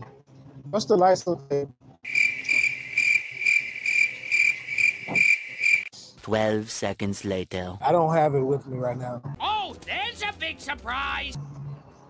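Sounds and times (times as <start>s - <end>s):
crickets chirping: 2.1s - 5.9s.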